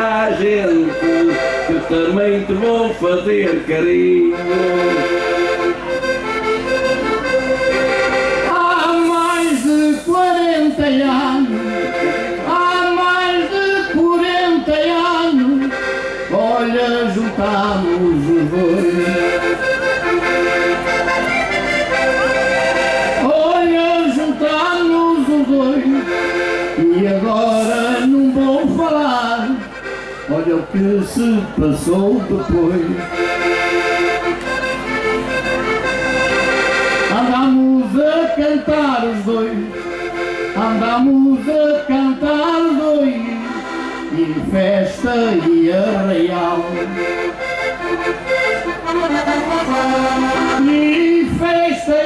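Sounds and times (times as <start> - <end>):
accordion playing folk melody: 0.0 - 52.0.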